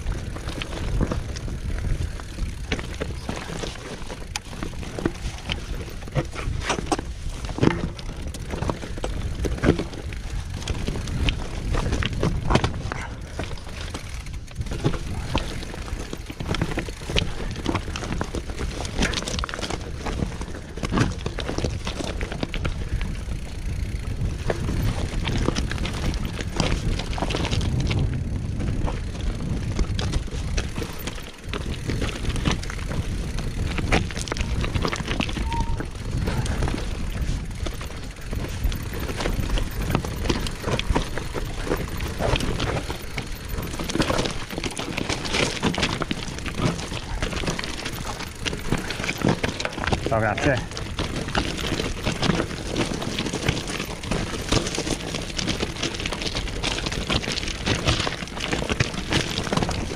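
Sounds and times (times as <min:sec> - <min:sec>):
bike rattling and knocking: 0:00.0 - 0:59.9
bike tyres crunching over stones: 0:00.0 - 0:59.9.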